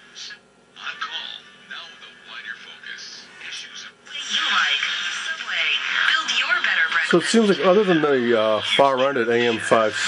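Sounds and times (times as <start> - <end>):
radio broadcast voice: 1.8 - 10.0.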